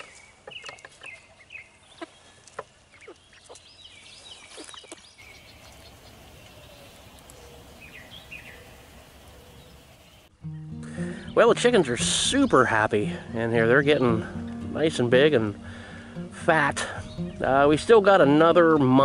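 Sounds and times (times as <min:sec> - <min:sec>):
bird chirps: 0:00.0 - 0:11.4, 0:17.0 - 0:17.4
chickens calling: 0:04.4 - 0:10.3
music: 0:10.3 - 0:19.0.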